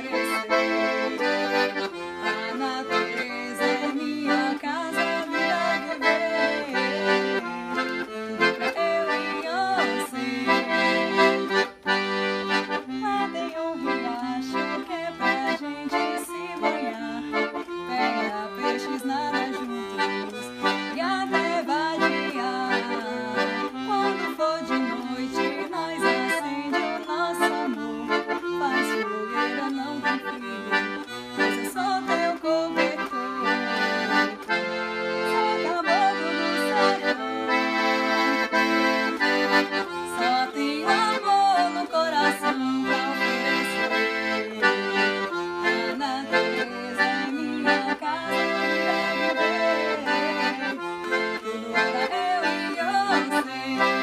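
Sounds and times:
accordion melody with chords: 0:00.0 - 0:54.0.

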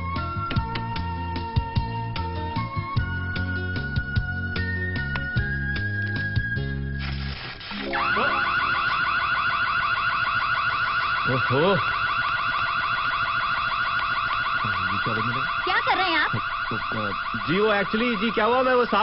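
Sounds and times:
electronic alarm warbling: 0:07.7 - 0:19.0.

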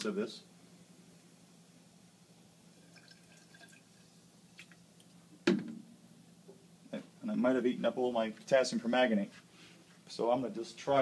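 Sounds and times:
liquid dripping into glass flask: 0:02.8 - 0:04.0.

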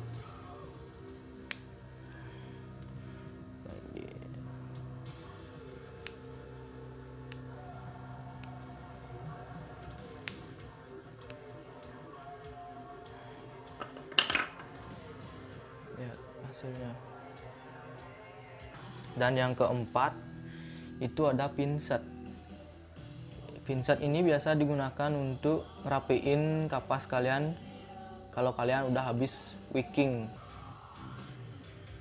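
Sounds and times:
background music: 0:00.0 - 0:32.0
small scissors snipping: 0:01.5 - 0:01.7, 0:06.0 - 0:06.3, 0:07.3 - 0:07.5, 0:08.4 - 0:08.7, 0:10.0 - 0:10.5, 0:11.2 - 0:11.4.

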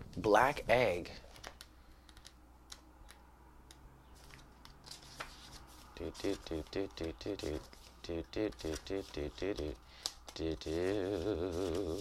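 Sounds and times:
low room hum: 0:00.0 - 0:12.0
paper rustling and clicking: 0:04.2 - 0:12.0.

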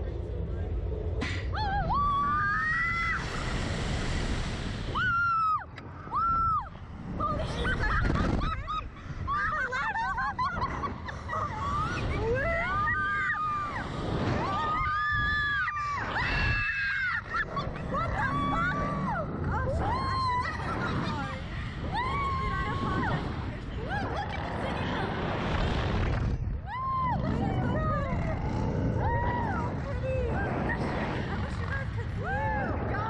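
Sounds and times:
wind rushing over microphone: 0:00.0 - 0:33.0
women screaming: 0:01.6 - 0:03.2, 0:05.0 - 0:06.7, 0:11.4 - 0:21.2, 0:21.8 - 0:23.3.

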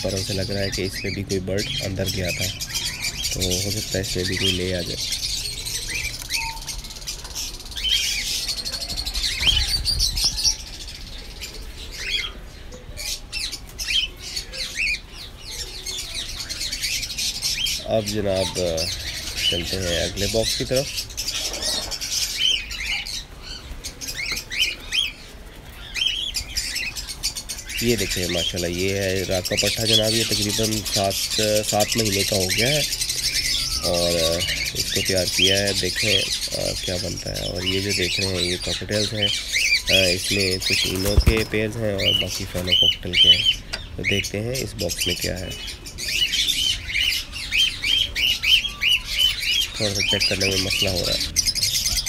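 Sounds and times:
cockatiels chirping: 0:00.0 - 0:52.0
wings fluttering: 0:39.5 - 0:42.9.

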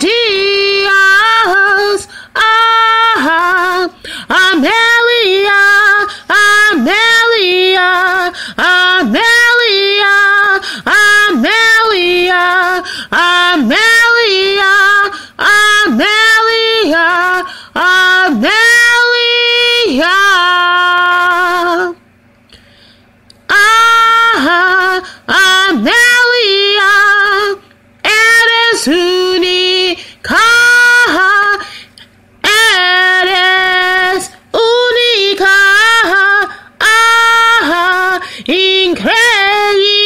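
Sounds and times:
woman singing unaccompanied: 0:00.0 - 0:22.1, 0:23.3 - 0:31.8, 0:32.4 - 0:40.0.

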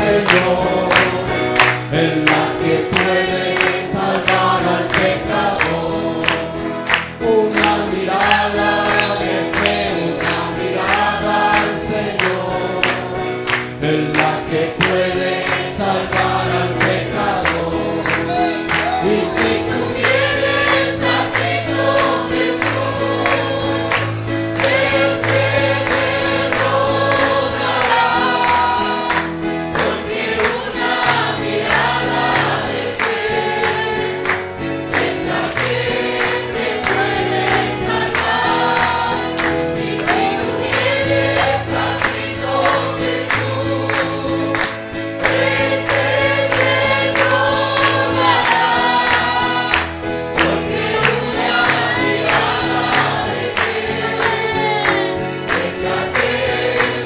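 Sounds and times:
congregation singing a hymn: 0:00.0 - 0:57.0
instrumental accompaniment: 0:00.0 - 0:57.0.

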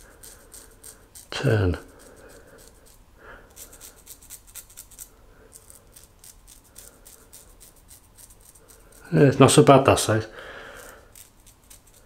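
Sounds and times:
razor scraping stubble: 0:00.0 - 0:12.0.

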